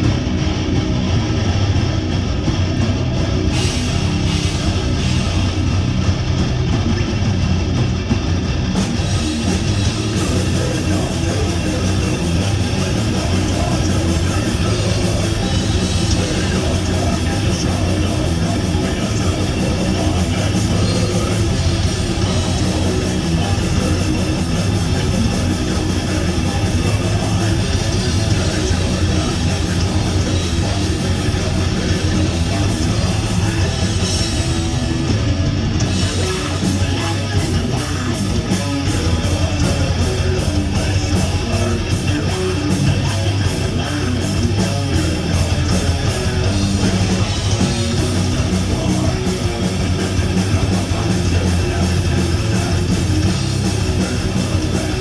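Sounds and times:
bass guitar: 0.0s - 55.0s
distorted electric guitars: 0.0s - 55.0s
drum kit: 0.0s - 55.0s.

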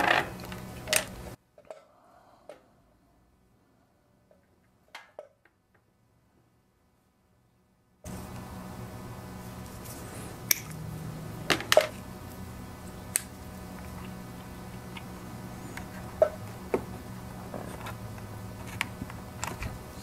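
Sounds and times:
steady low hum: 0.0s - 4.5s, 8.0s - 20.0s.

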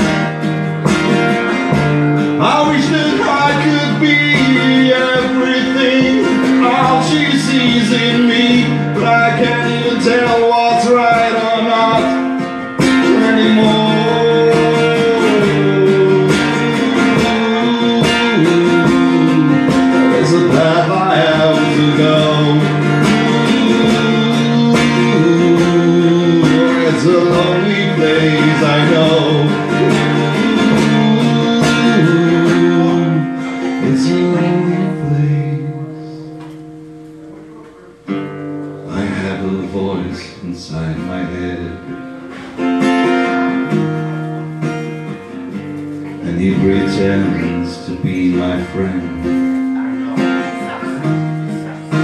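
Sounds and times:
acoustic guitar strumming: 0.0s - 52.0s
man singing: 0.0s - 52.0s.

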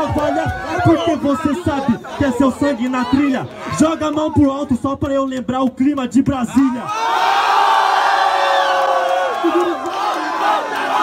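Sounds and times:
crowd yelling: 0.0s - 4.4s, 6.6s - 11.0s.

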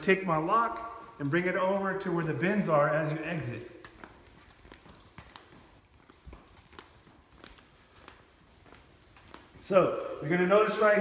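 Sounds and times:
footsteps on hard floor: 0.0s - 10.8s.

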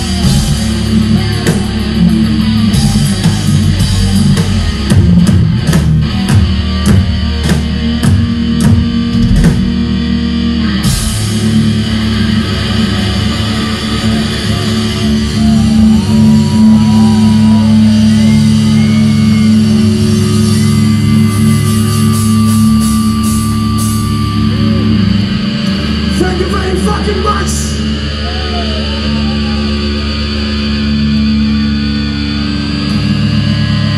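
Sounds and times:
drum kit: 0.0s - 28.6s
distorted electric guitars: 0.0s - 33.9s.

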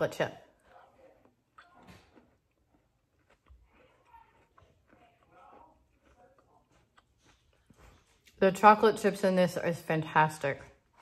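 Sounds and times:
person chewing cookie: 0.5s - 8.4s.

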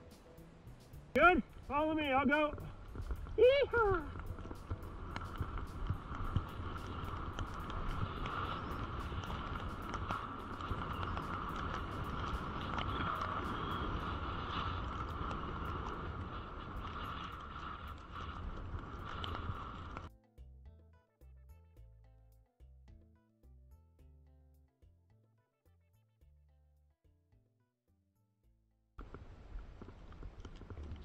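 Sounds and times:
background music: 0.0s - 14.2s
crackles: 0.0s - 20.1s, 29.0s - 31.0s
wind rushing over microphone: 0.7s - 20.1s
skis hissing through snow: 2.8s - 20.1s.

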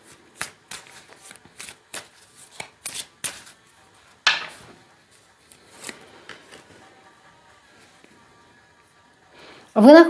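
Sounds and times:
cards being shuffled: 0.0s - 6.8s.

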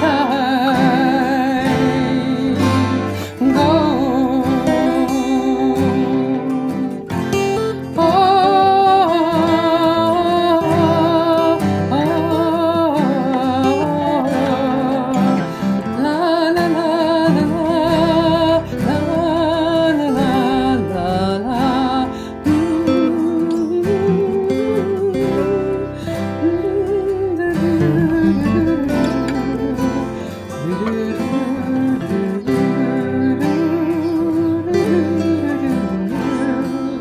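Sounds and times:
acoustic guitar: 0.0s - 37.0s
person singing with vibrato: 0.0s - 37.0s.

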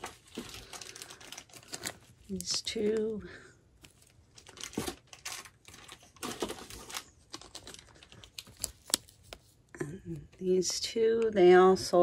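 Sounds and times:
plastic bags crinkling: 0.0s - 9.3s.

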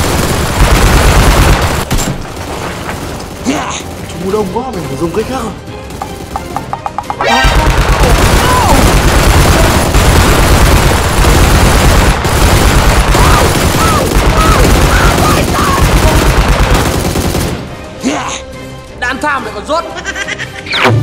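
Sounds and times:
rapid machine gun fire: 0.0s - 4.1s, 7.4s - 17.7s.

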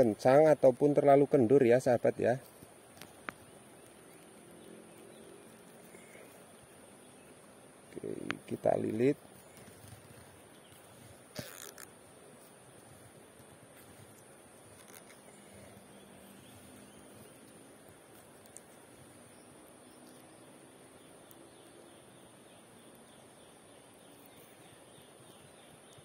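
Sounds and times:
faint ticks: 2.4s - 26.0s.

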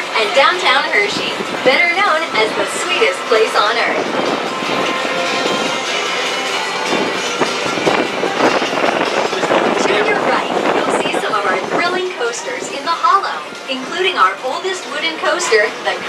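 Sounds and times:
monorail car running on track: 0.0s - 16.0s.

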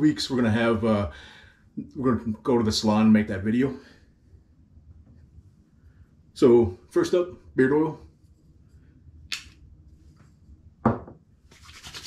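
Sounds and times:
palms rubbing together: 11.5s - 12.0s.

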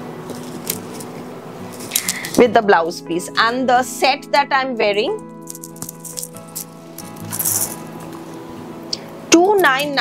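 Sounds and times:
soft background music: 0.0s - 10.0s
bead necklace rattling and clinking: 5.4s - 8.2s.

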